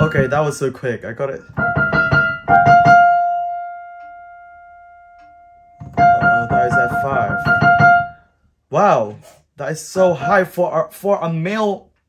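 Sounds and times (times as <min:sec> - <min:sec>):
high piano note: 0:00.0 - 0:00.8, 0:01.6 - 0:08.3.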